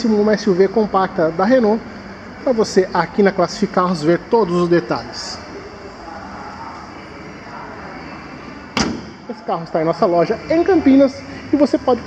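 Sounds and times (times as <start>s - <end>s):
steady background noise: 0.0s - 12.0s
car hood slamming shut: 8.8s - 9.2s.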